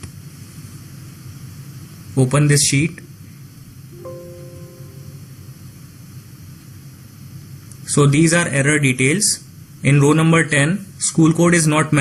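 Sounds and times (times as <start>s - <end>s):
low hum with faint hiss: 4.0s - 5.8s.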